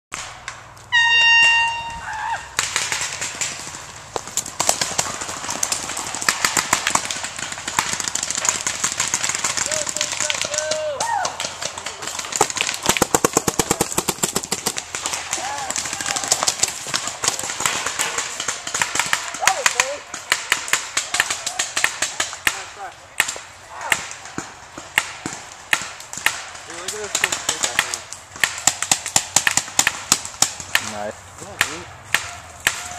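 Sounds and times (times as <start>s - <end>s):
horn blast: 0.9s - 2.0s
paintball markers firing: 2.5s - 32.9s.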